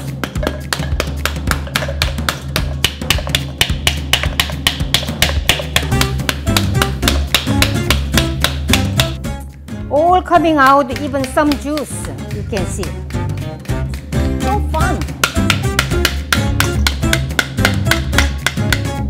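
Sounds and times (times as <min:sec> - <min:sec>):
background music: 0:00.0 - 0:19.0
wooden spoon knocking on pomegranate: 0:00.2 - 0:09.2, 0:10.9 - 0:13.8, 0:14.7 - 0:19.0.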